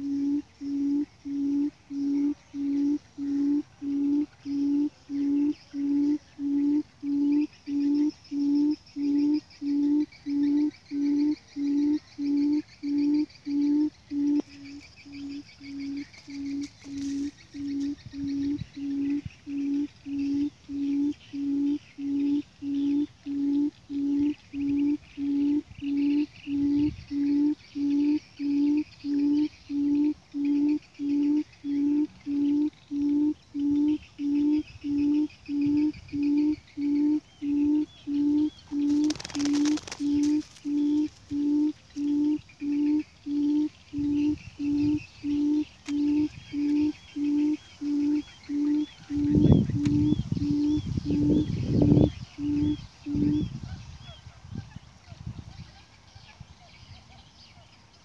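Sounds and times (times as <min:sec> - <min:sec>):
bird low hooting call: 0:00.0 - 0:57.6.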